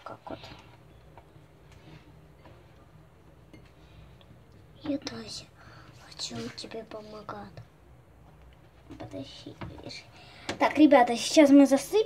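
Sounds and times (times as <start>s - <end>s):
person speaking: 4.7s - 7.7s
person whispering: 5.1s - 7.5s.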